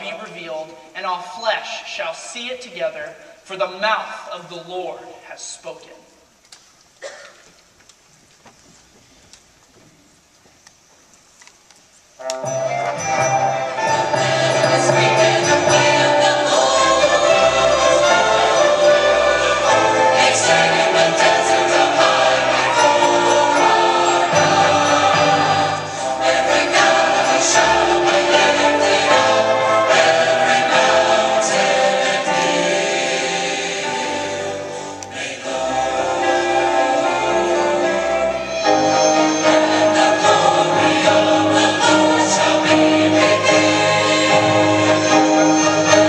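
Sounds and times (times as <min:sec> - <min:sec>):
grand piano: 0:12.2 - 0:46.0
string orchestra: 0:12.2 - 0:46.0
large choir singing: 0:12.5 - 0:46.0.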